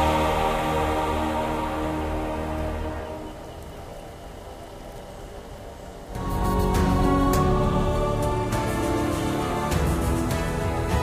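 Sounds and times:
low ambient drone: 0.0s - 11.0s.

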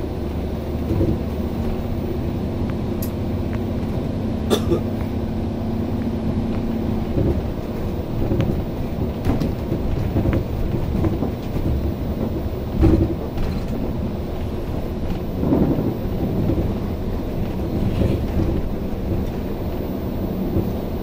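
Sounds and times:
bus body rattles and knocks: 0.0s - 21.0s
bus engine rumble: 0.0s - 21.0s.

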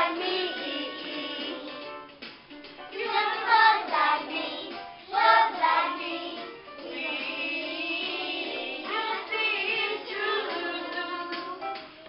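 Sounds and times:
children singing: 0.0s - 1.9s, 3.0s - 11.6s.

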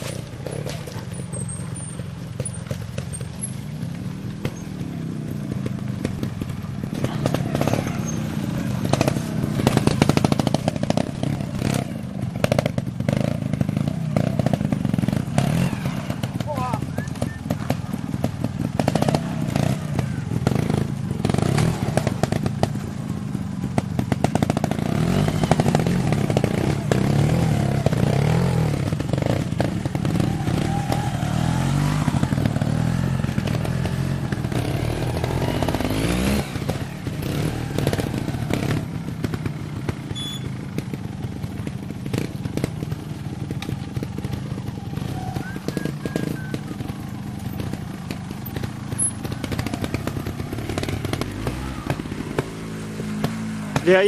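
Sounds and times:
motorcycle engine revving: 0.0s - 54.0s
people talking: 6.9s - 8.9s, 16.4s - 18.1s, 45.1s - 46.8s, 53.7s - 54.0s.

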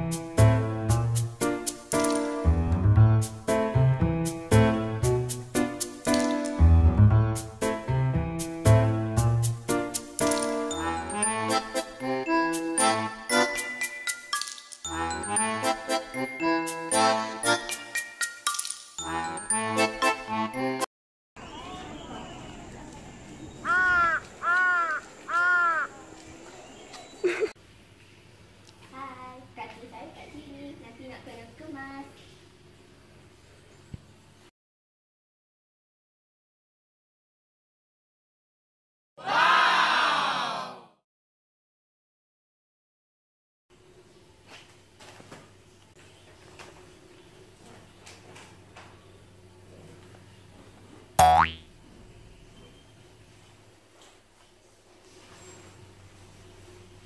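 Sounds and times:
crow cawing: 23.6s - 26.1s
cartoon boing: 51.2s - 51.7s.

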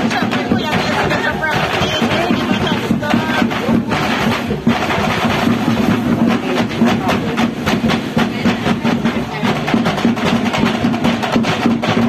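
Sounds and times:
crowd voices: 0.0s - 12.0s
drums beating fast rhythm: 0.0s - 12.0s.

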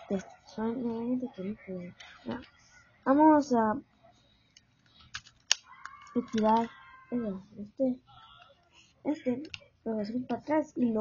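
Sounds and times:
plastic pistol clicks: 5.1s - 6.7s.

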